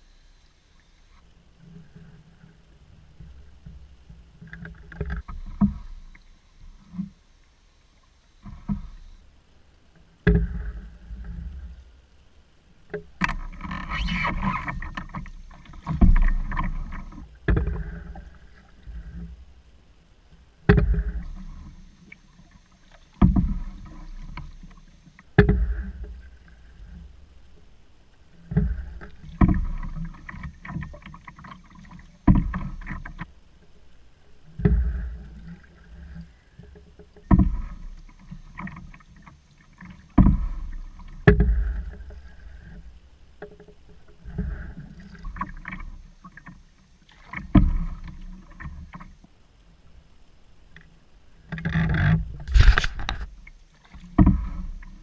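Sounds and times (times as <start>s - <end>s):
canoe paddle strokes knocking: 3.0s - 7.2s, 8.0s - 9.1s, 12.9s - 19.3s, 20.6s - 49.2s, 51.5s - 55.0s.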